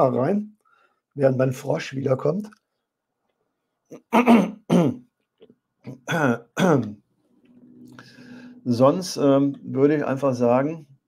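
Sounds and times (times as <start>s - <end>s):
man clearing his throat: 3.9s - 5.1s, 5.9s - 7.0s.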